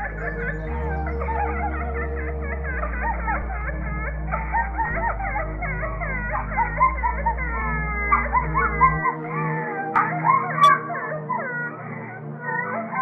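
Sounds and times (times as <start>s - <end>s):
low steady drone: 0.0s - 11.8s
wavering wailing cries: 0.0s - 13.0s.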